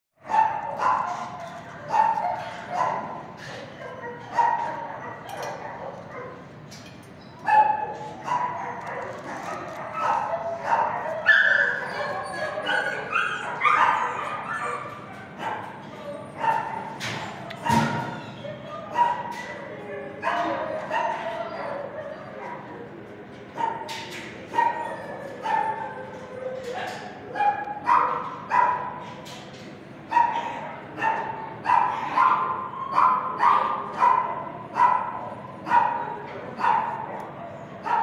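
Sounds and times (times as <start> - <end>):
dogs barking: 0.2 - 6.6, 7.4 - 22.7, 23.6 - 29.0, 30.1 - 38.0.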